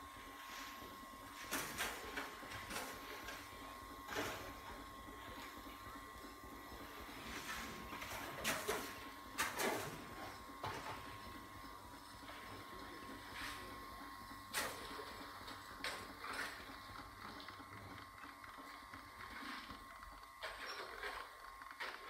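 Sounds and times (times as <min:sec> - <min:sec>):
mechanical whirring hum: 0:00.0 - 0:22.0.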